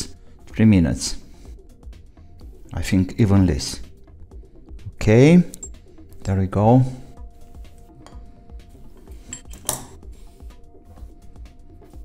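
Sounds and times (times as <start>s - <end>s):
metallic clink: 5.5s - 5.9s, 9.0s - 10.0s.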